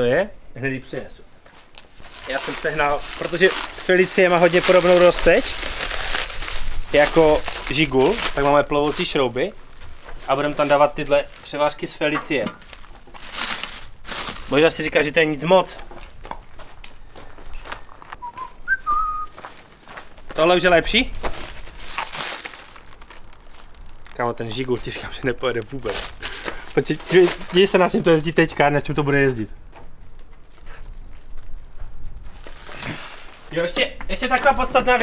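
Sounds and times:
plastic wrap rustling: 1.8 - 33.7
person whistling: 18.2 - 19.4.

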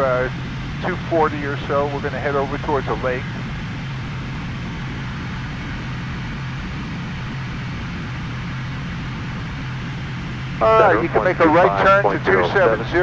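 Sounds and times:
constant low hum: 0.0 - 13.0.

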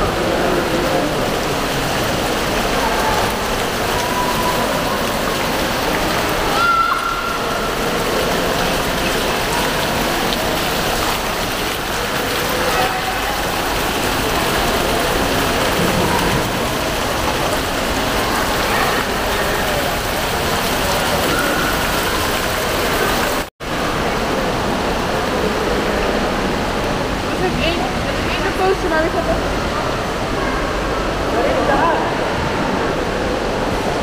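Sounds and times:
fountain jets splashing into pool: 0.0 - 34.0
murmur of voices: 0.0 - 34.0.

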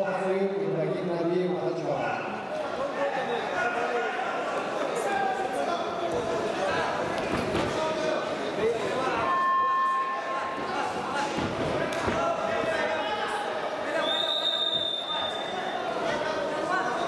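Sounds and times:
voices calling out in hall: 0.0 - 17.0.

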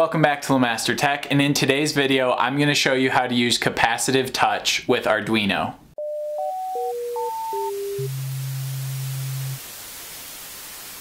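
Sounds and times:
electronic beeps: 6.6 - 9.6
static hiss: 7.5 - 11.0.

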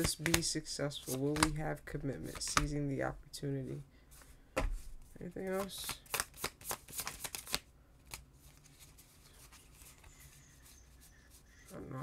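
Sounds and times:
cards being shuffled: 0.0 - 2.8, 4.6 - 10.8.

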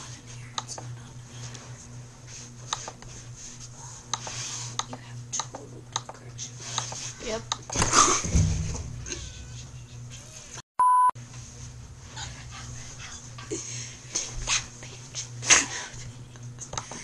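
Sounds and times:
girls laughing: 9.0 - 10.6.

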